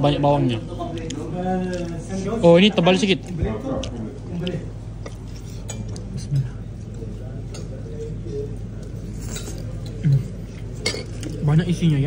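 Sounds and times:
distant chatter of diners: 0.0s - 12.0s
steady low hum: 0.0s - 12.0s
cutlery and plates clinking: 9.0s - 11.4s.

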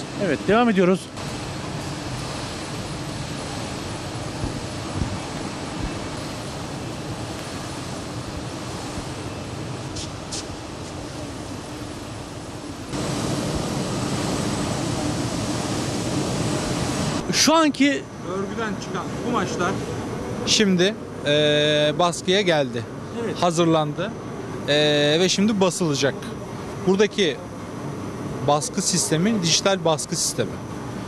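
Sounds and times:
textile mill machinery running: 0.0s - 31.0s.

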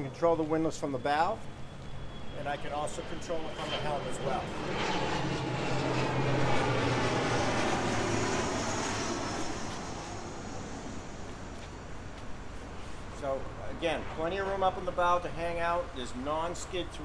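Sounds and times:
aircraft engine drone: 0.0s - 17.0s.

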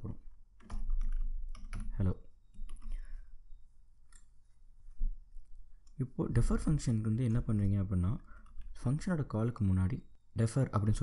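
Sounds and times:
person speaking: 5.8s - 11.0s.

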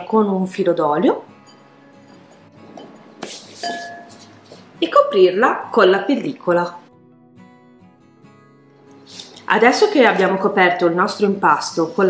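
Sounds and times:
quiet background music: 0.0s - 12.0s
glass bowl clinking: 1.4s - 4.4s.

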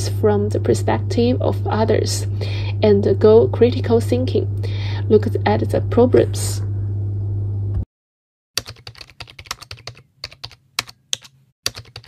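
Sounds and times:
computer keyboard typing: 8.6s - 12.0s.

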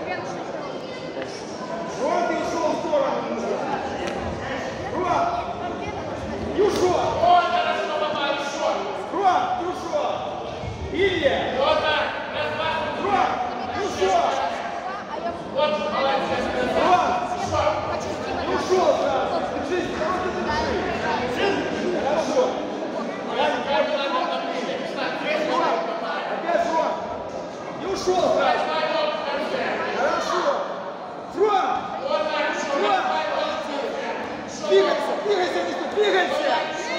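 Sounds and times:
voices calling out in a hall: 0.0s - 36.9s.

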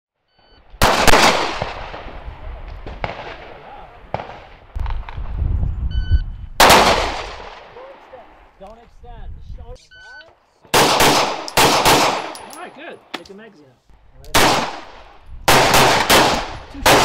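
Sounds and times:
handgun shots echoing: 10.8s - 12.6s.

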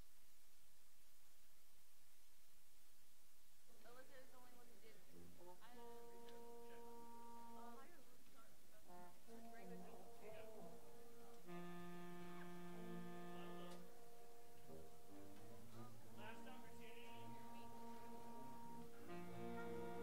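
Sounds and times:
string instruments tuning: 8.8s - 20.0s.

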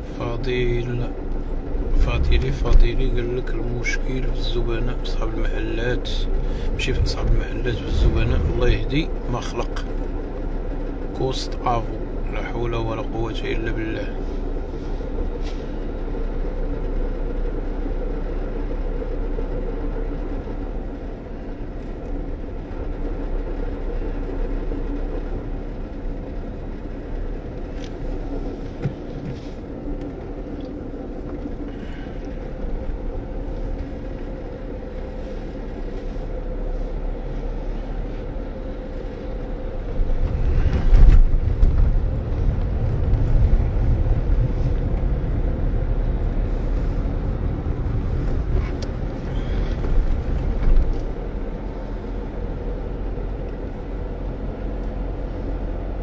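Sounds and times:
car engine hum: 0.0s - 56.0s
road rumble: 0.0s - 56.0s.

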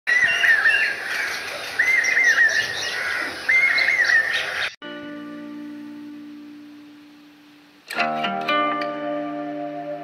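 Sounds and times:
songbird singing: 0.1s - 7.9s
background hiss: 4.8s - 10.0s.

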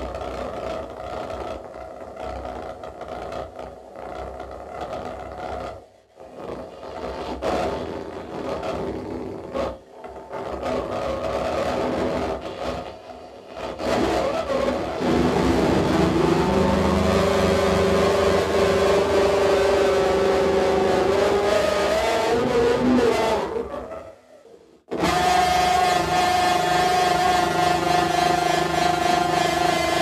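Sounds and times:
loud droning tone: 13.8s - 24.0s, 24.9s - 30.0s.

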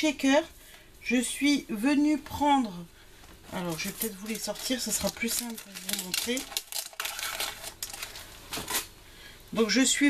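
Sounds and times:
packaging rustling: 3.5s - 9.0s.

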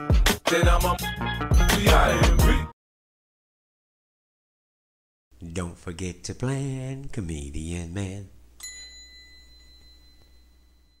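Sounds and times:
high-pitched bell ding: 8.6s - 11.0s.

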